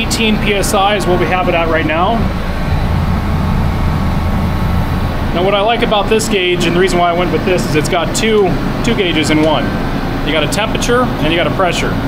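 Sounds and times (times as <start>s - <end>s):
machine low rumbling drone: 0.0s - 12.0s.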